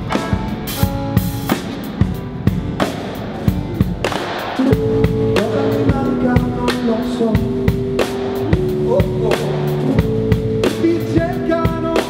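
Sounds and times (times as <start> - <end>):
drum kit beat: 0.0 - 12.0
guitar and keyboard chords: 0.0 - 12.0
held melody line: 3.5 - 12.0.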